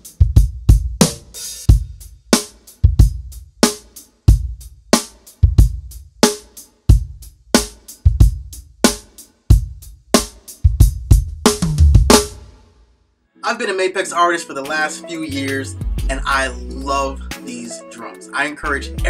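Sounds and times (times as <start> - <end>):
drum kit groove: 0.0 - 12.8, 13.5 - 19.0
kick drum: 0.2 - 2.1, 2.8 - 3.5, 4.3 - 4.8, 5.4 - 6.2, 6.9 - 12.5
snare drum hits: 11.5 - 12.7.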